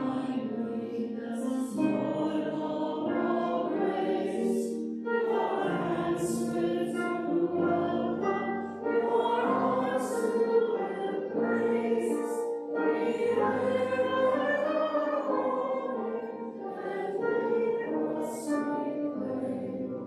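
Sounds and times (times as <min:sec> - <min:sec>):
group singing a hymn: 0:00.0 - 0:20.0.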